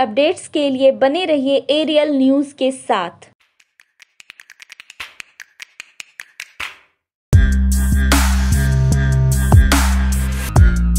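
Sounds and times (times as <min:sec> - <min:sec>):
glitchy clicks and ticks: 0:03.4 - 0:06.7.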